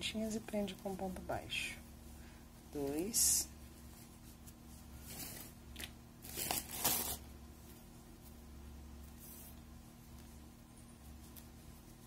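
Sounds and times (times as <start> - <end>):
steady low hum: 0.0 - 12.0
yarn rustling and scraping: 0.5 - 12.0.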